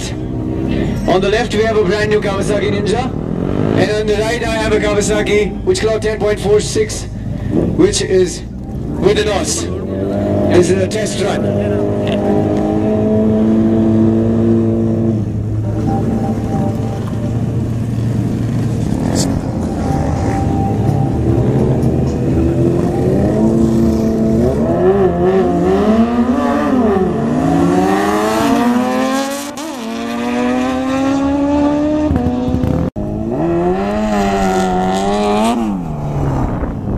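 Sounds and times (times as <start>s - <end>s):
motorcycle engines revving: 0.0s - 36.9s.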